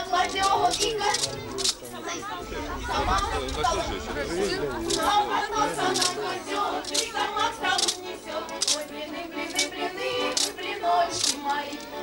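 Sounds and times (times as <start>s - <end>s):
group singing folk song: 0.0s - 12.0s.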